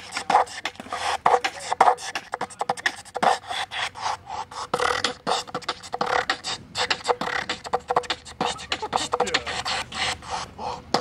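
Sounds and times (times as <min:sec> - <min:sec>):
beatboxing through a megaphone: 0:00.0 - 0:11.0.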